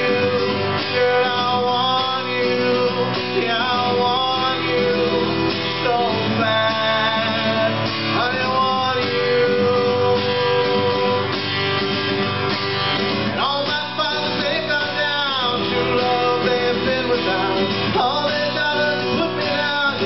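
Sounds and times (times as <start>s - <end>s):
strummed acoustic guitar: 0.0s - 20.0s.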